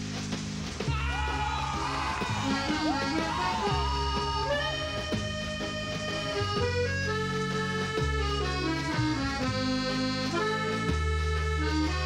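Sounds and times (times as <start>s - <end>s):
accordion chords: 1.2s - 12.0s.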